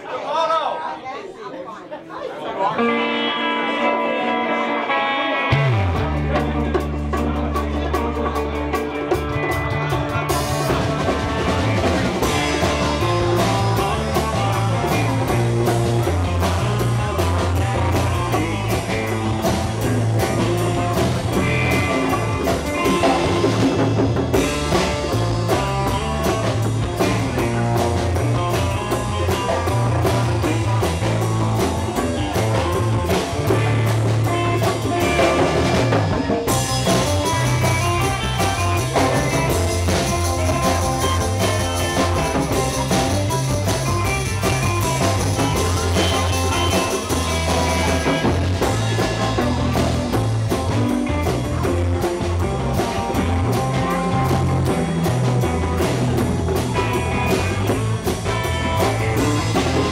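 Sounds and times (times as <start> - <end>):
electric guitar tune: 2.6 - 59.9
bass line: 5.0 - 59.9
drum kit with cymbals: 5.5 - 59.9.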